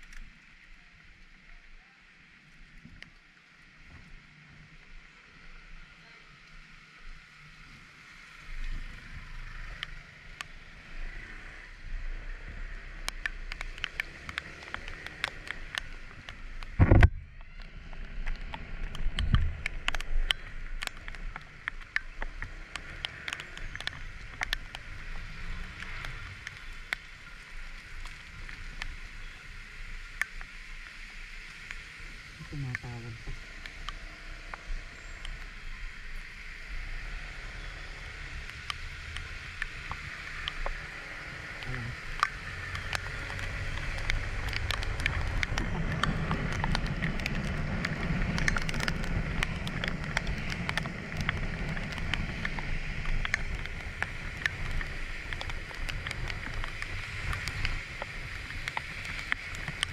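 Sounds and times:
raindrops ticking on camera: 0:00.0 - 0:59.9
wind and wet road hiss: 0:00.0 - 0:59.9
scooter engine hum: 0:05.3 - 0:31.2, 0:31.9 - 0:59.9.

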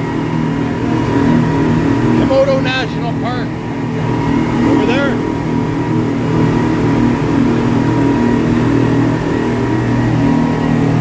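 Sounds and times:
speedboat engines droning: 0:00.0 - 0:11.0.

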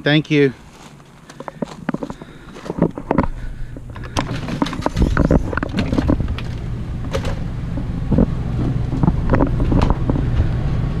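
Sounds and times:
steady low rumble: 0:00.5 - 0:11.0.

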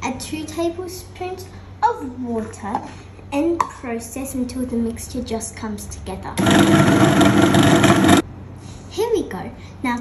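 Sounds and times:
food processor motor running: 0:06.4 - 0:08.2.

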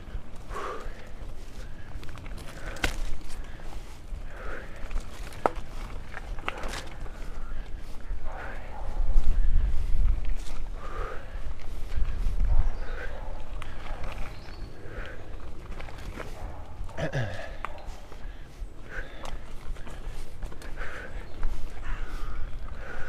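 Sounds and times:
bike tyres rumbling on trail: 0:00.0 - 0:23.0
rider breathing hard: 0:00.0 - 0:23.0
bike rattling clicks: 0:00.2 - 0:03.6, 0:04.4 - 0:07.3.

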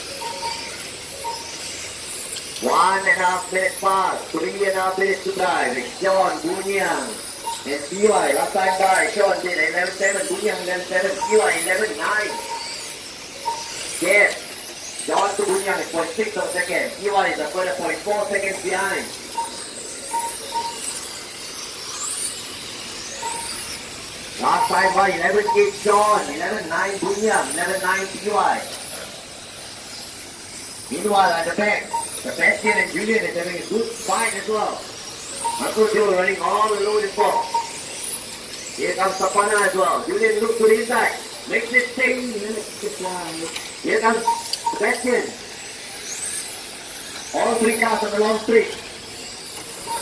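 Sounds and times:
high-pitched motor whines: 0:00.0 - 0:50.0
steady hiss: 0:00.0 - 0:50.0
short beeps: 0:00.2 - 0:01.6, 0:07.0 - 0:09.2, 0:11.0 - 0:12.8, 0:13.4 - 0:14.4, 0:17.9 - 0:20.9, 0:23.2 - 0:23.8, 0:24.4 - 0:27.2, 0:31.8 - 0:33.0, 0:35.4 - 0:37.9, 0:44.1 - 0:45.0.

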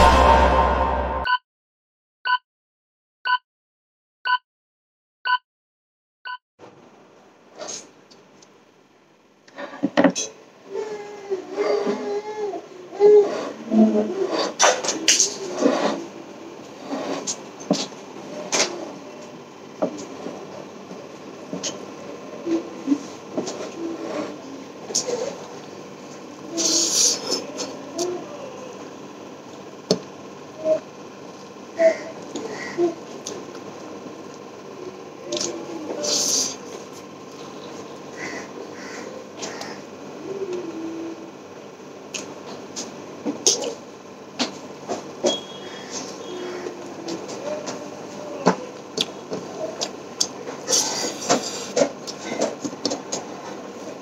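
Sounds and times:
louder bursts: 0:00.0 - 0:01.3.

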